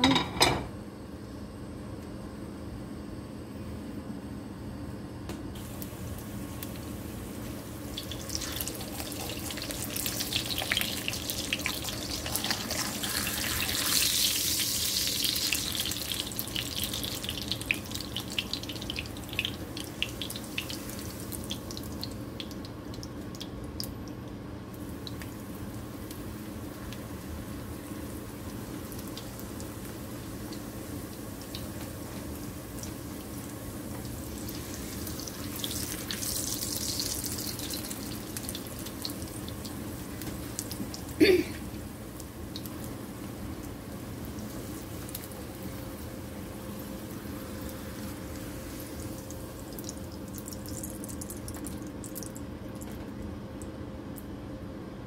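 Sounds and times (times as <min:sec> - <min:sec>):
oil sizzling and crackling: 0:05.6 - 0:54.3.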